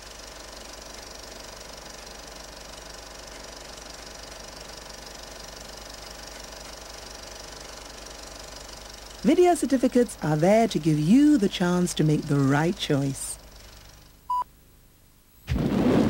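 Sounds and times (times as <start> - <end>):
film projector clatter: 0.0 - 14.2.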